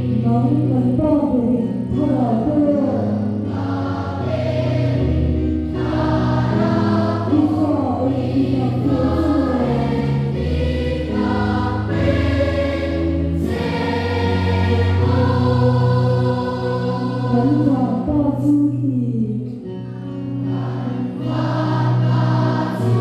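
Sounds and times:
children's choir singing a hymn: 1.9s - 18.6s, 20.2s - 23.0s.

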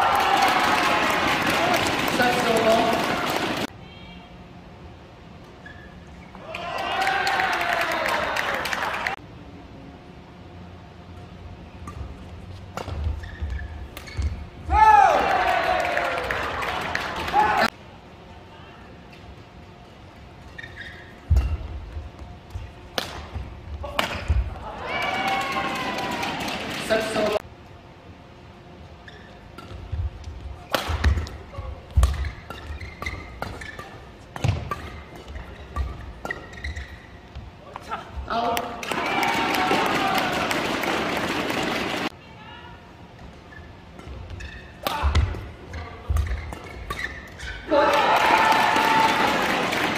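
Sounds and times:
loud shout: 0.0s - 1.8s, 6.4s - 9.1s, 14.7s - 17.7s, 24.6s - 26.4s, 38.9s - 40.6s, 47.7s - 49.6s
shoes squeaking: 5.4s - 6.4s, 11.9s - 14.7s, 19.1s - 24.6s, 28.9s - 38.4s, 43.2s - 47.7s
racket striking shuttlecock: 22.9s - 24.4s, 30.7s - 36.5s.

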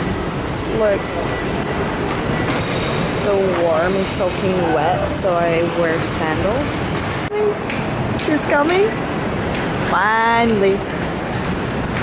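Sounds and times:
train passing with rumble and hiss: 0.0s - 12.0s.

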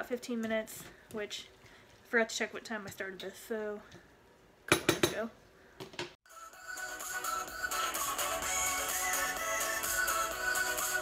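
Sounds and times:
background music with sustained tones: 6.3s - 11.0s.

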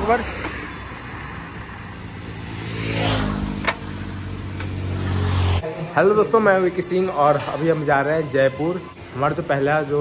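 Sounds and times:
motorcycle engine starting and running: 0.0s - 5.6s.

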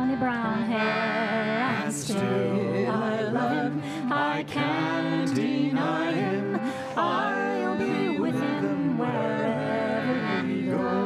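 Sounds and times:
woman singing a slow ballad: 0.0s - 1.0s
acoustic guitar and strings: 0.0s - 11.0s.

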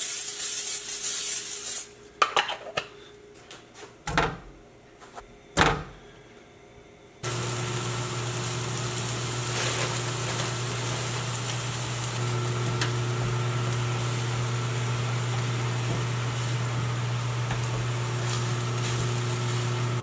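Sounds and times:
electric motor humming: 7.2s - 20.0s.

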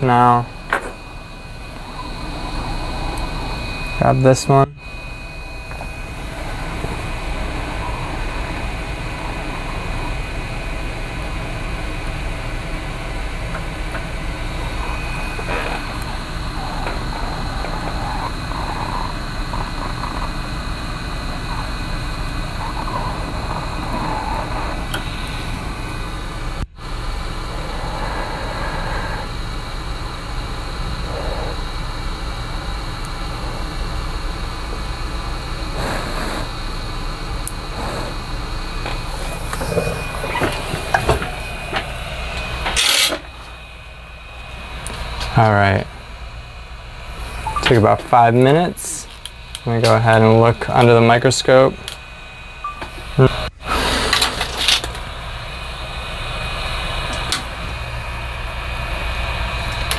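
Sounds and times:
hot air station blowing: 0.0s - 59.9s.

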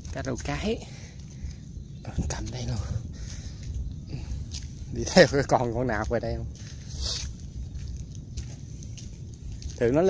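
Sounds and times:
footsteps on wet path: 0.0s - 10.0s
steady low rumble: 0.0s - 10.0s.

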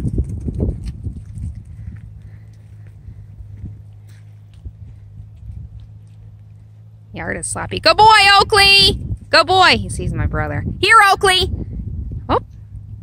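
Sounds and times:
footsteps on wet gravel: 0.0s - 7.0s
low steady hum: 0.0s - 13.0s.

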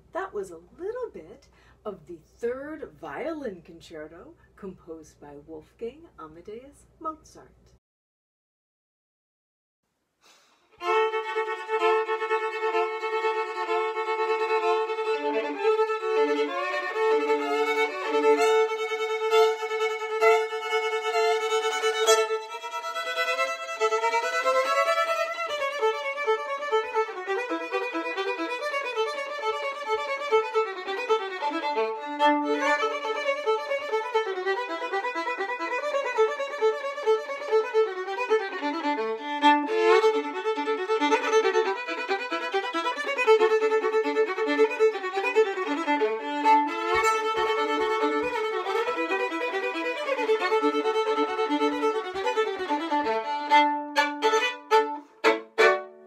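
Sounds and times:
solo fiddle: 10.7s - 56.0s.

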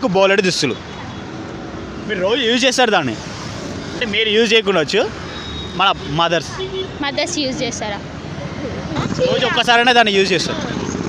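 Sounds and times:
road traffic hum: 0.0s - 11.0s.

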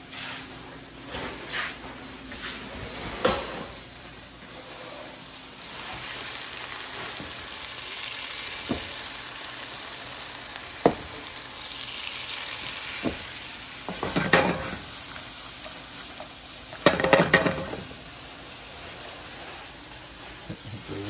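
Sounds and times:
fish sizzling in oil: 4.5s - 21.0s
pan clattering while stirred: 13.9s - 14.8s, 16.8s - 17.8s.

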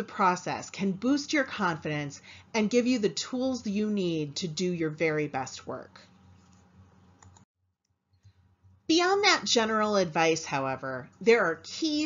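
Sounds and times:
woman's voice: 0.0s - 6.1s, 8.9s - 12.0s
small clicks: 7.2s - 7.5s.

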